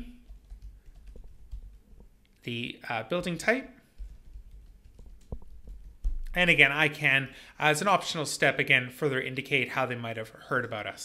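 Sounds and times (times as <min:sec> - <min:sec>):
faint keyboard typing: 0:00.0 - 0:02.4, 0:03.0 - 0:06.8.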